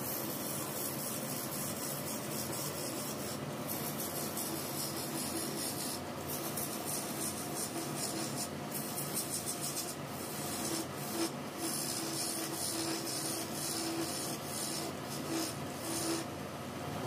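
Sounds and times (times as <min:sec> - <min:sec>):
chisel scraping spinning wood: 0:00.0 - 0:16.3
lathe humming: 0:00.0 - 0:16.4.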